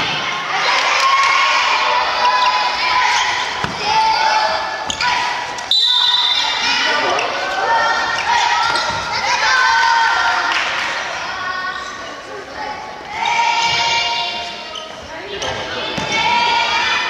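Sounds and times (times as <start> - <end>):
children shouting: 0.0 - 14.8, 15.7 - 17.0.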